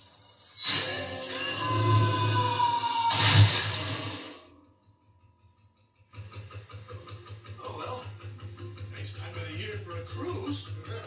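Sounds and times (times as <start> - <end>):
faint regular pulsing: 4.7 - 11.0.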